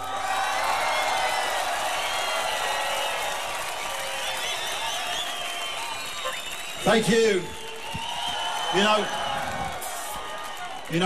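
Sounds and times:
audience cheering and applauding: 0:00.0 - 0:11.0
whistles and whoops: 0:00.2 - 0:11.0.

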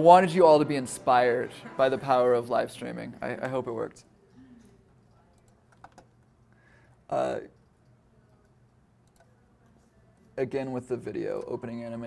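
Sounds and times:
faint computer mouse clicks: 0:07.8 - 0:09.3.

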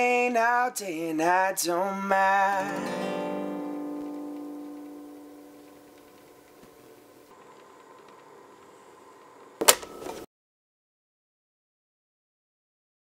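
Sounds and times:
acoustic guitar chord ringing: 0:02.3 - 0:07.3
faint hiss: 0:02.6 - 0:09.6.

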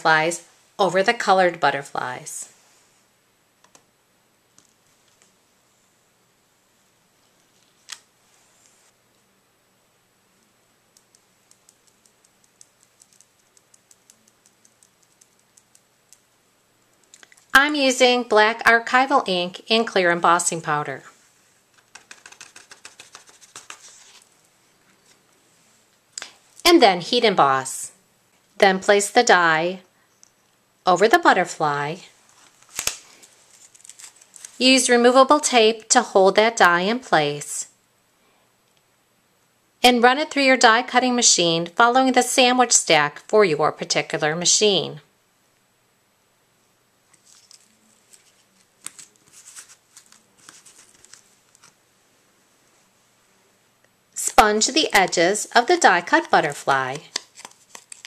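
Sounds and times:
paper rustling and clicking: 0:21.7 - 0:24.3, 0:32.4 - 0:34.6, 0:47.1 - 0:51.8, 0:57.0 - 0:58.0.

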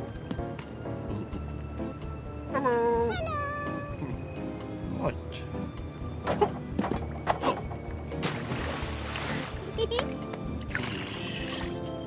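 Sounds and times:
cartoon music: 0:02.6 - 0:04.2
high whiny cartoon voice: 0:03.0 - 0:04.0.

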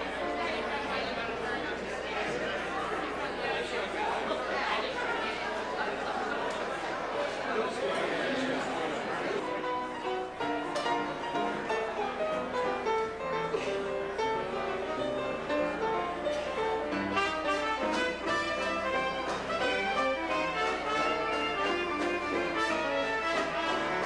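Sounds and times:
jazz band playing: 0:09.4 - 0:24.0.

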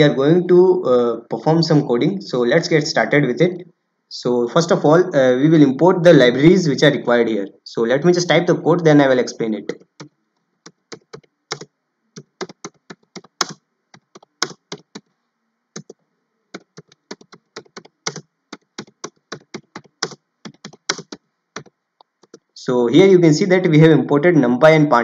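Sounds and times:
computer keyboard typing: 0:09.7 - 0:15.1, 0:15.8 - 0:22.6.

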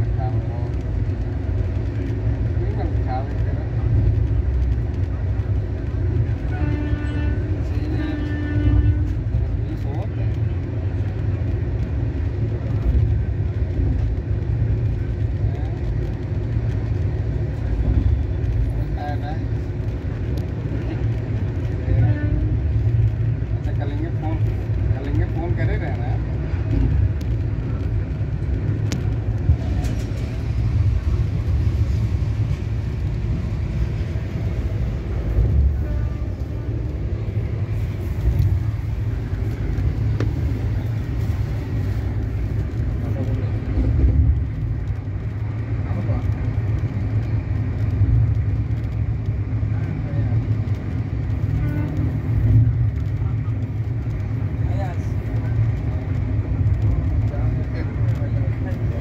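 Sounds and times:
faint passenger voices: 0:00.0 - 0:59.0
train rumbling: 0:00.0 - 0:59.0.

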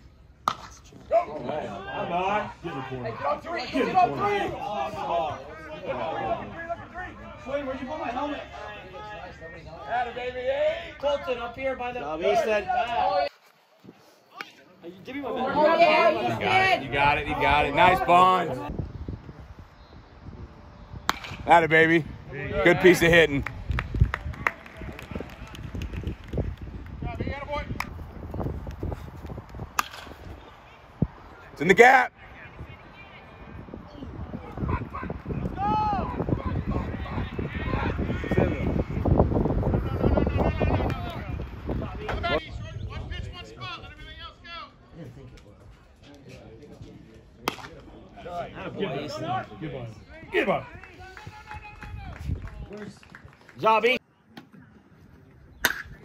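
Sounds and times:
baseball bat cracking ball: 0:00.4 - 0:00.9, 0:21.1 - 0:21.5, 0:29.7 - 0:30.3, 0:47.4 - 0:47.8, 0:55.6 - 0:56.0.

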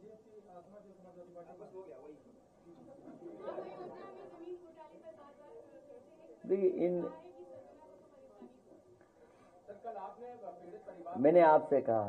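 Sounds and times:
chatter of voices: 0:00.0 - 0:11.4.

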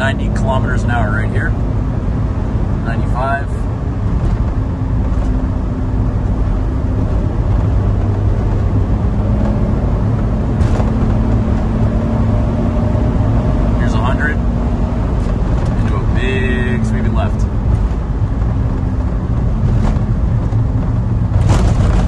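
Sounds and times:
car engine drone in cabin: 0:00.0 - 0:22.0
road noise: 0:00.0 - 0:22.0.

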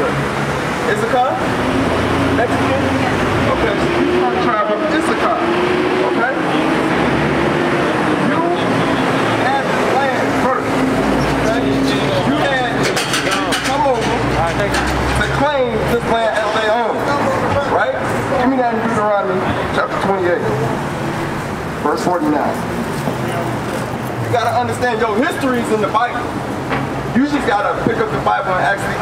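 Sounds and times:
indistinct voices talking: 0:00.0 - 0:29.0
passing vehicle rumble: 0:00.0 - 0:29.0
road traffic noise: 0:00.0 - 0:29.0.

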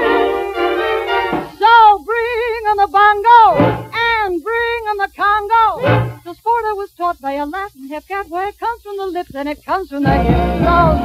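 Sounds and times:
ensemble chord: 0:00.0 - 0:01.6
woman singing with vibrato: 0:00.0 - 0:11.0.

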